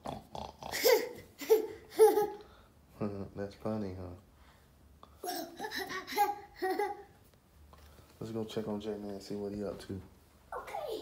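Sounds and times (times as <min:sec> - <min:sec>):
toddler laughing: 0:00.7 - 0:02.4, 0:05.2 - 0:07.2.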